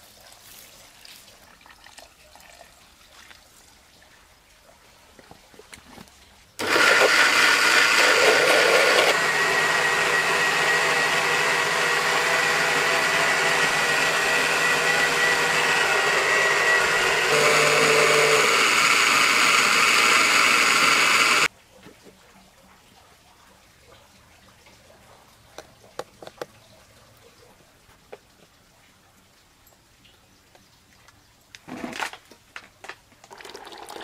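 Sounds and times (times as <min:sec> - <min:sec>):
electric mixer grinders blending: 0:06.6 - 0:21.5.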